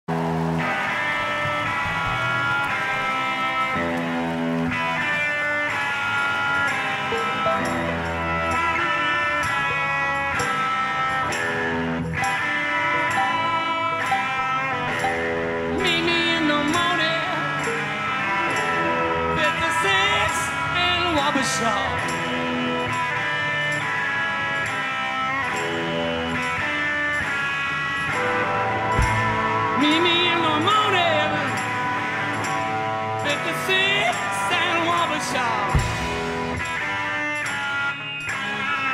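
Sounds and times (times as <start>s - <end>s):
live band playing sustained chords: 0.1s - 38.9s.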